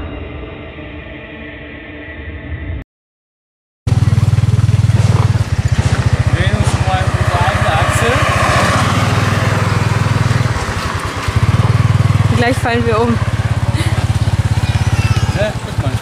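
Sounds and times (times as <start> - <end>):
small motorbike engine running: 3.9 - 16.0.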